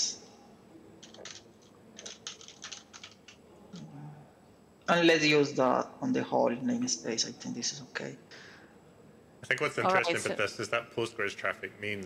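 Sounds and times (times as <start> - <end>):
keyboard typing: 1.0 - 3.9.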